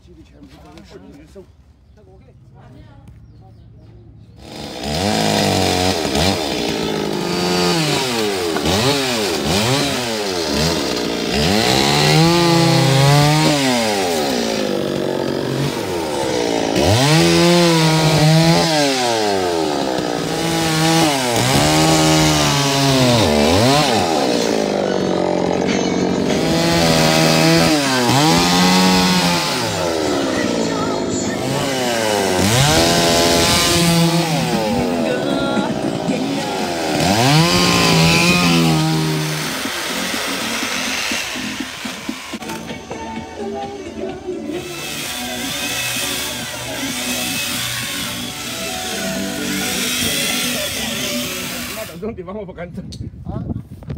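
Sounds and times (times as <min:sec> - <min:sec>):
chainsaw cutting into log: 0:04.4 - 0:52.0.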